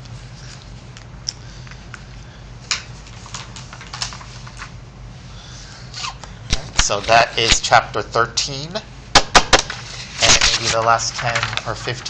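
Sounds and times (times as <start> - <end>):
low steady hum: 0.0 - 12.0
paper rustling and clicks: 2.7 - 4.7, 9.4 - 12.0.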